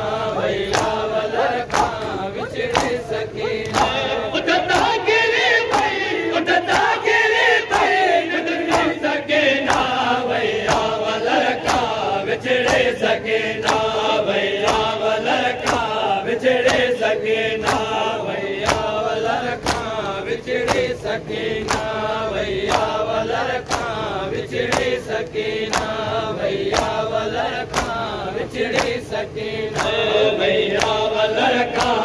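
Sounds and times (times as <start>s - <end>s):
men chanting in unison: 0.0s - 32.0s
hands slapping bare chests: 0.7s - 1.0s, 1.6s - 3.0s, 3.6s - 4.0s, 5.7s - 6.0s, 8.6s - 9.0s, 9.6s - 10.0s, 11.6s - 12.0s, 12.6s - 13.0s, 13.6s - 13.9s, 14.6s - 15.0s, 15.6s - 15.9s, 16.6s - 17.0s, 18.6s - 19.0s, 19.6s - 21.0s, 21.6s - 22.0s, 23.6s - 24.0s, 24.7s - 25.0s, 25.7s - 26.0s, 26.7s - 27.0s, 27.7s - 28.0s.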